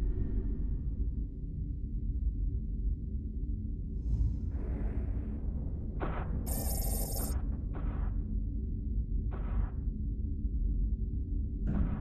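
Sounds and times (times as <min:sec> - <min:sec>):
shrill electronic ringing: 0:06.5 - 0:07.3.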